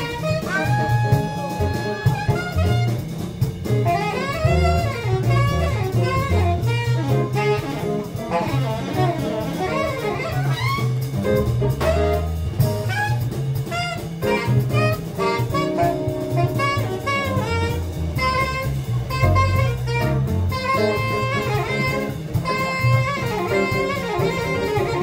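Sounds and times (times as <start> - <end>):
jazz band with drums and bass: 0.0 - 25.0
saxophone soloing: 0.0 - 25.0.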